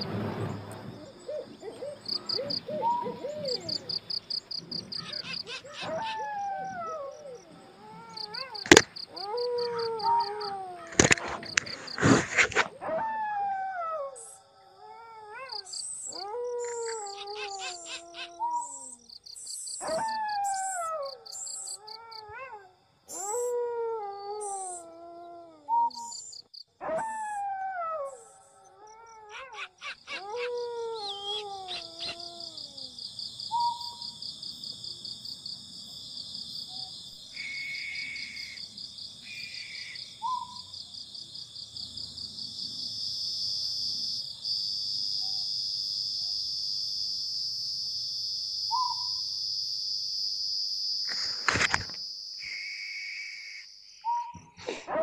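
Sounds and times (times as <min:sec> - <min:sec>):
falling animal calls: 0:01.1 - 0:18.5, 0:28.8 - 0:32.9
high-pitched insect trill: 0:02.0 - 0:12.7, 0:15.5 - 0:22.2, 0:29.8 - 0:54.2.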